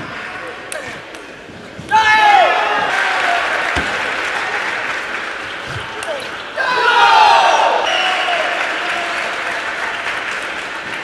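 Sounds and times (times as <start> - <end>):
murmur of voices in a hall: 0.0 - 11.0.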